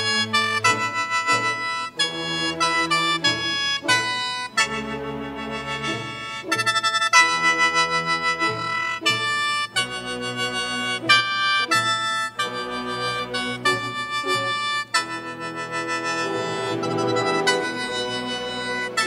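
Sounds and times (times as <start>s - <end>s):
symphony orchestra: 0.0s - 19.0s
guzheng playing: 15.8s - 19.0s.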